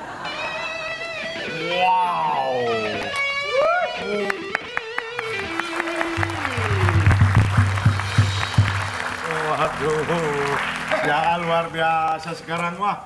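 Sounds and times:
electric guitar playing: 0.0 - 12.5.

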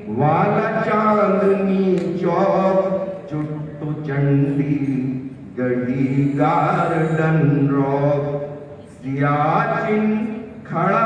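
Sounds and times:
man chanting through loudspeakers: 0.0 - 11.0.

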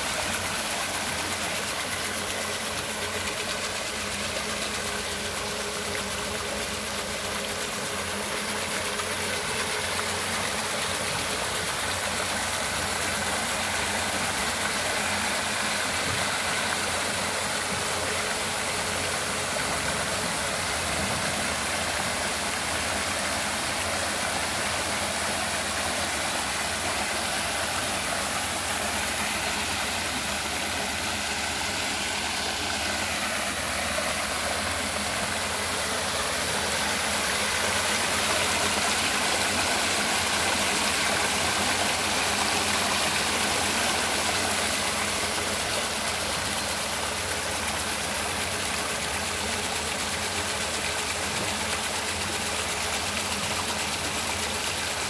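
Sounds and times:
faint motor hum: 0.0 - 55.0
paddlewheels splashing water: 0.0 - 55.0.

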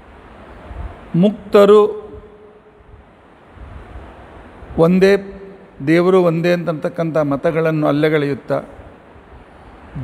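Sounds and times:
low hiss and rumble: 0.0 - 10.0
man speaking: 1.1 - 2.2, 4.8 - 8.8.

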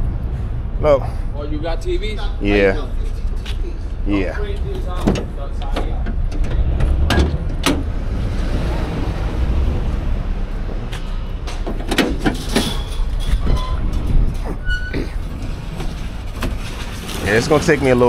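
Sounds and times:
steady low rumble: 0.0 - 17.2
van door latch clicks and clunks: 5.0 - 7.9, 11.4 - 12.7.

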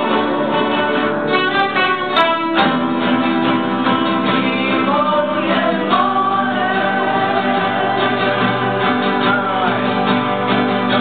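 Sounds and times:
acoustic guitars playing: 0.0 - 11.0
boy singing: 4.2 - 10.1.

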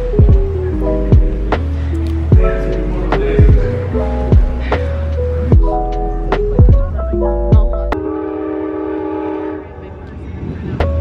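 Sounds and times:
train rumble: 0.0 - 11.0
train horn chord: 7.9 - 10.2.

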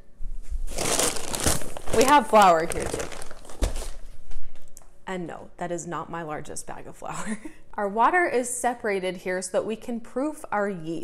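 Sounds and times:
flour sack rustling: 0.6 - 4.1.

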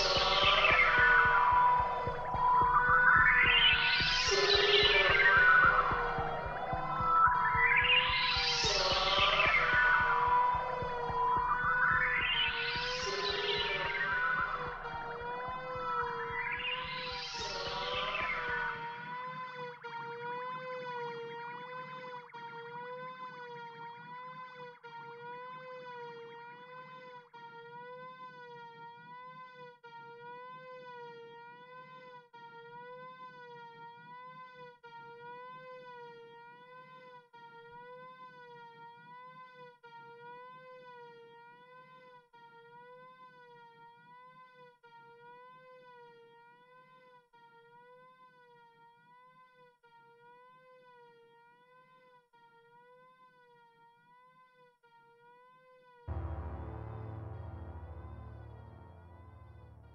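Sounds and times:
low synth drone: 56.1 - 59.9
sustained synthesizer tone with vibrato: 56.1 - 59.9.

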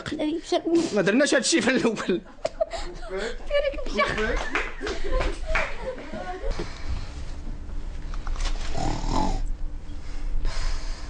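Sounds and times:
steady low hum: 0.0 - 11.0
woman snoring: 8.7 - 9.5.

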